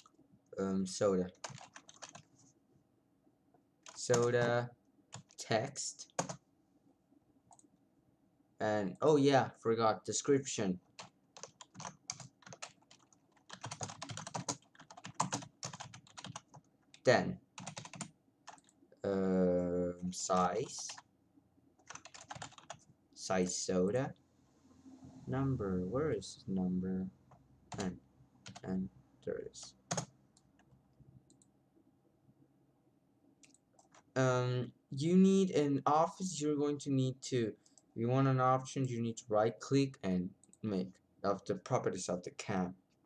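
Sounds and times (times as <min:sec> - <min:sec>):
computer keyboard typing: 0:01.2 - 0:02.3, 0:03.8 - 0:04.5, 0:05.1 - 0:05.4, 0:06.0 - 0:06.4, 0:11.0 - 0:18.8, 0:20.3 - 0:21.0, 0:21.8 - 0:23.5, 0:27.7 - 0:28.7, 0:29.9 - 0:31.5, 0:33.4 - 0:34.1.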